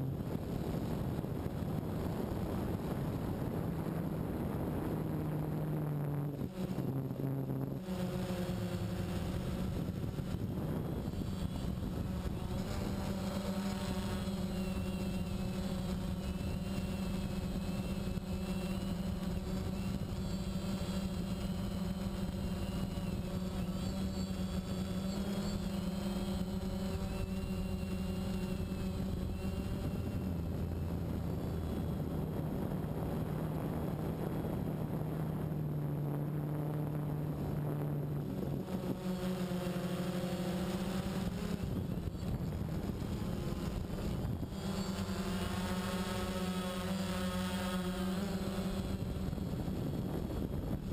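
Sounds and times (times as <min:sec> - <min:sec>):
drone propellers humming: 0:00.0 - 0:50.9.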